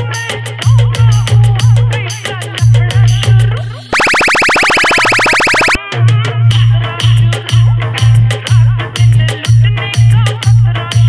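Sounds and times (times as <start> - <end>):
dance beat: 4.0 - 5.8
pulsing electronic buzz: 4.0 - 5.8.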